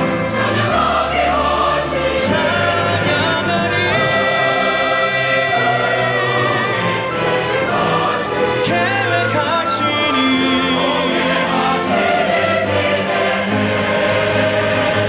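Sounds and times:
choir singing a hymn: 0:00.0 - 0:15.0
orchestral accompaniment: 0:00.0 - 0:15.0
man singing solo into microphone: 0:08.6 - 0:11.6.

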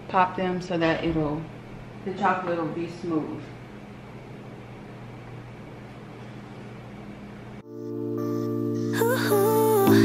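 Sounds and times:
low hum with soft hiss: 0:00.0 - 0:10.0
background music with held notes: 0:07.6 - 0:10.0.

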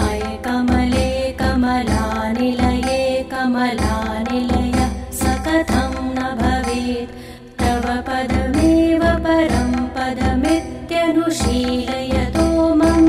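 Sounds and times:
drum beats: 0:00.0 - 0:03.2, 0:03.8 - 0:06.9, 0:07.6 - 0:10.7, 0:11.4 - 0:13.0.

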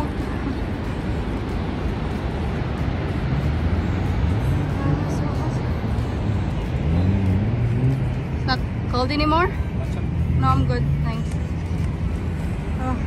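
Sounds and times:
distant waterfall: 0:00.0 - 0:13.0
road traffic rumble: 0:00.0 - 0:13.0
vehicle engine drone: 0:00.0 - 0:13.0.

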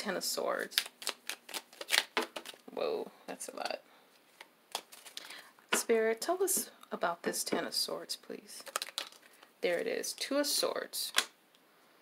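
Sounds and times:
cards being shuffled: 0:00.6 - 0:02.6, 0:04.3 - 0:05.9, 0:08.6 - 0:09.9.

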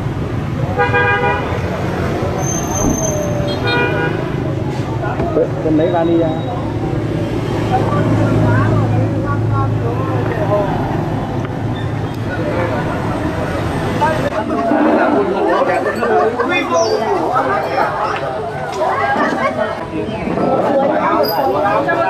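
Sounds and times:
many voices chattering: 0:00.0 - 0:22.0
traffic engine hum: 0:00.0 - 0:22.0
people talking: 0:01.9 - 0:22.0.

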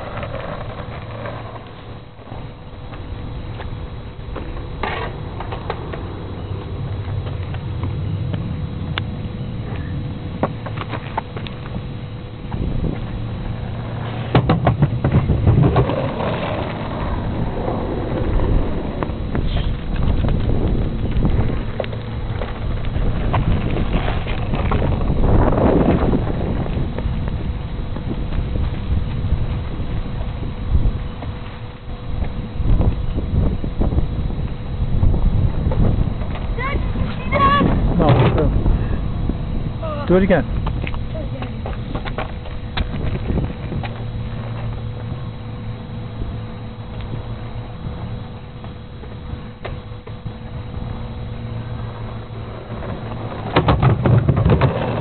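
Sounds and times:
skateboard clicks and knocks: 0:00.0 - 0:09.0, 0:13.0 - 0:25.2, 0:51.8 - 0:55.0
skateboard wheels rolling on asphalt: 0:00.0 - 0:55.0.

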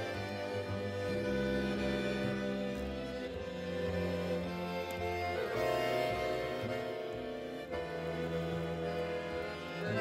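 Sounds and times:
string ensemble playing tango: 0:00.0 - 0:10.0.

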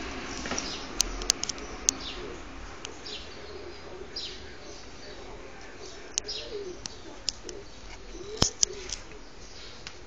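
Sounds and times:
birds cooing: 0:00.0 - 0:10.0
sharp clicks: 0:00.4 - 0:02.0, 0:08.4 - 0:09.2
bird chirps: 0:00.4 - 0:09.9.

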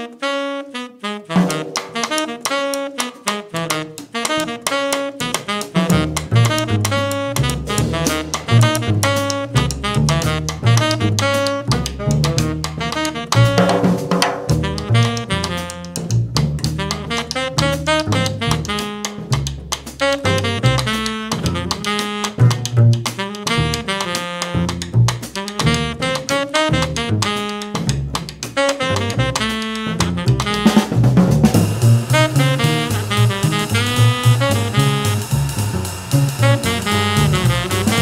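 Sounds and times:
tenor saxophone melody: 0:00.0 - 0:13.9, 0:14.5 - 0:38.0
drum kit: 0:01.3 - 0:38.0
upright bass: 0:03.6 - 0:38.0.

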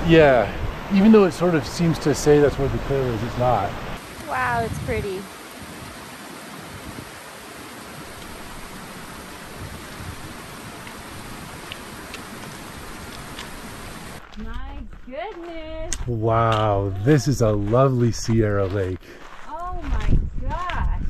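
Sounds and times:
creek running over rocks: 0:00.0 - 0:20.2.

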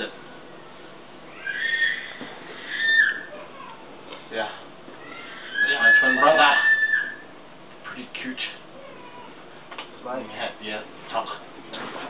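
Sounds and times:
man squealing: 0:01.4 - 0:03.3, 0:05.0 - 0:07.3.

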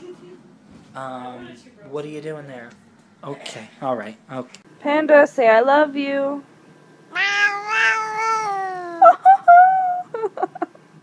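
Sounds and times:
cat chirps: 0:07.1 - 0:09.0
cat meowing: 0:07.1 - 0:09.0.

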